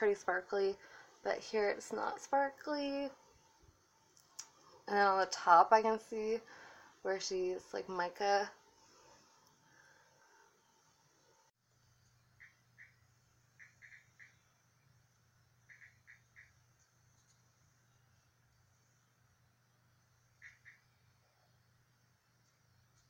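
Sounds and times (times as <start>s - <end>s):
faint low hum: 0.0s - 23.0s.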